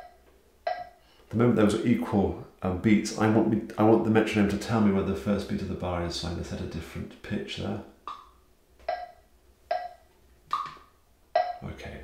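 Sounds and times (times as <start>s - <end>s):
electronic metronome clicking: 0.0s - 1.0s, 8.1s - 11.6s.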